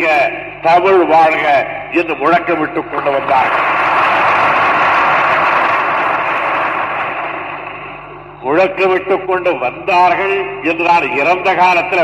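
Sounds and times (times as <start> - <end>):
audience applause: 3.1 - 7.9.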